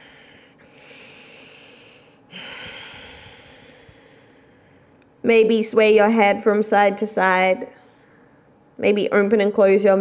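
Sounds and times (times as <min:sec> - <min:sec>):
woman breathing slowly: 0:00.0 - 0:05.1, 0:07.8 - 0:08.6.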